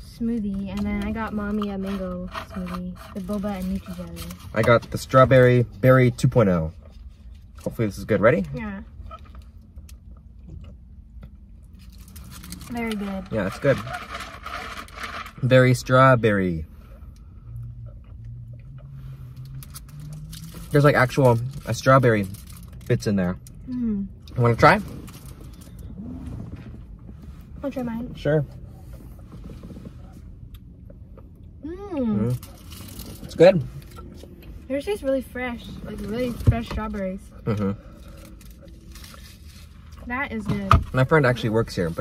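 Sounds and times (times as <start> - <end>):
low hum inside a car: 0.0 - 42.0.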